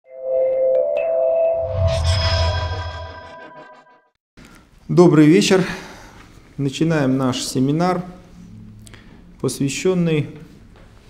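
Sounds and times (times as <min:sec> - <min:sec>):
rising whoosh: 0:01.5 - 0:04.0
deep bass swell: 0:07.5 - 0:10.2.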